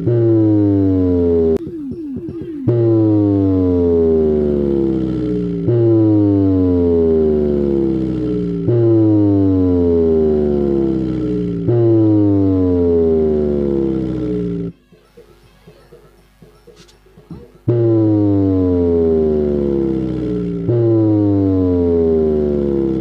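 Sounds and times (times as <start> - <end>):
deep bass test tone: 0.0 - 14.8, 17.6 - 23.0.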